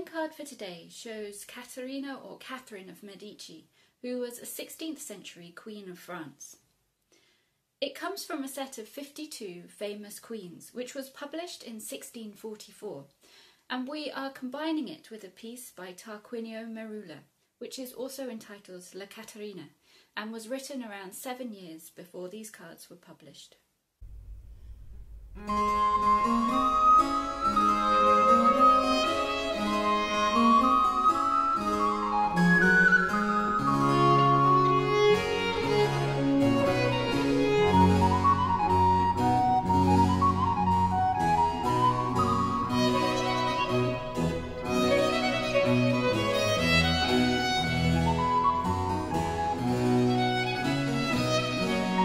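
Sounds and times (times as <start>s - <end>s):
harpsichord: 25.4s - 38.7s
high melody line: 25.4s - 52.0s
viola da gamba: 25.4s - 52.0s
violin: 25.4s - 52.0s.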